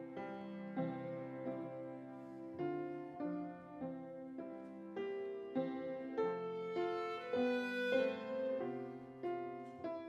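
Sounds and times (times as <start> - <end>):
musical accompaniment: 6.1 - 9.7
clarinet slow melody: 6.3 - 9.3.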